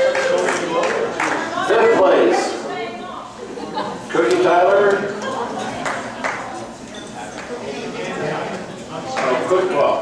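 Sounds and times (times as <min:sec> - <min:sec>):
indistinct talking in echoing room: 0:00.0 - 0:10.0.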